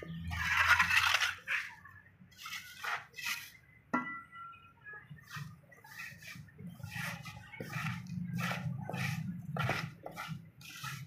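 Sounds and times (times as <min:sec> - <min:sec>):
wooden straightedge scraping wet cement: 0:00.2 - 0:03.6, 0:05.3 - 0:11.0.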